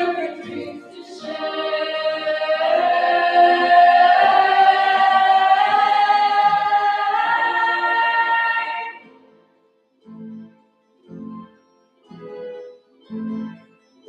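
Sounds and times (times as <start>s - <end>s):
choir singing sustained chord: 0.0s - 9.1s.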